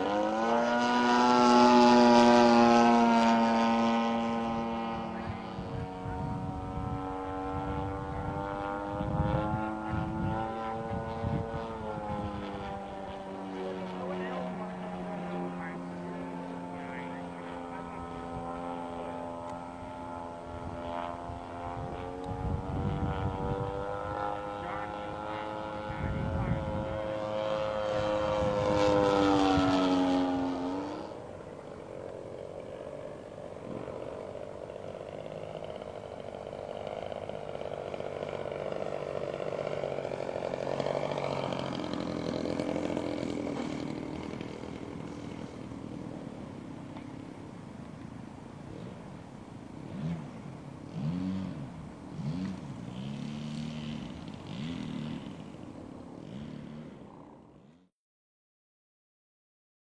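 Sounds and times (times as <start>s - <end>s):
model airplane engine drone: 0.0s - 57.9s.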